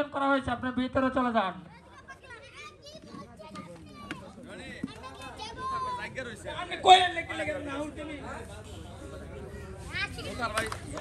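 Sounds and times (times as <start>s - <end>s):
children chattering and calling: 1.6s - 11.0s.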